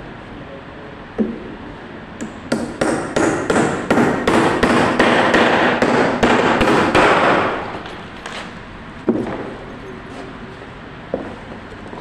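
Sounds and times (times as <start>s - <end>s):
hammer striking timber: 2.2s - 7.6s.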